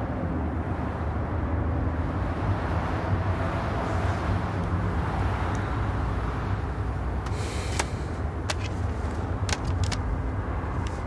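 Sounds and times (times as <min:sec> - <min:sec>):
road rumble inside car: 0:00.0 - 0:11.0.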